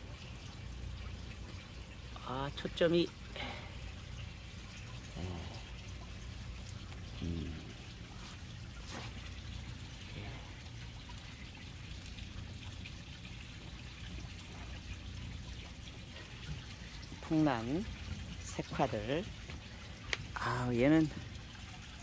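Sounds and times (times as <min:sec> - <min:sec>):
trickling running water: 0:00.0 - 0:22.0
voiced murmur: 0:05.1 - 0:05.8.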